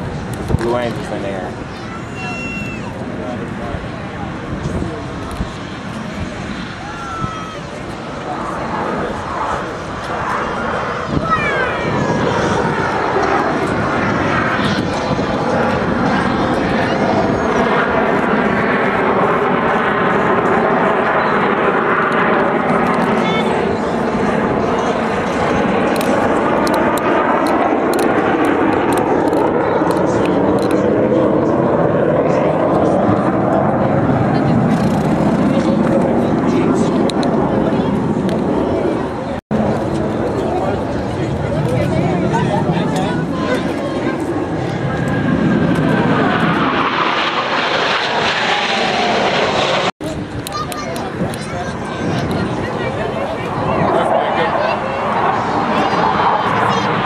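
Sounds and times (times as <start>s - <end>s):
jet roar passing overhead: 0.0s - 57.0s.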